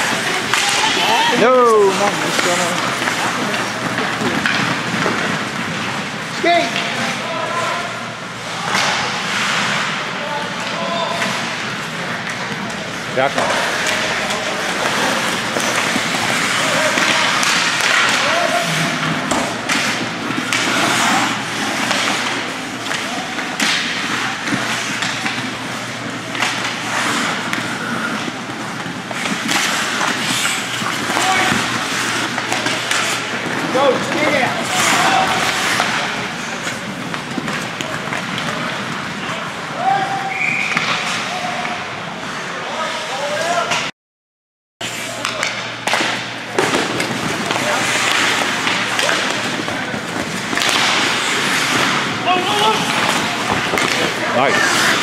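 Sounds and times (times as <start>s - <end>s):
skates scraping on ice: 0.0s - 7.7s, 11.2s - 41.6s, 44.8s - 55.0s
sticks and puck clacking: 0.0s - 7.7s, 8.4s - 43.9s, 44.9s - 55.0s
shouts and voices: 39.7s - 40.4s, 52.2s - 53.1s.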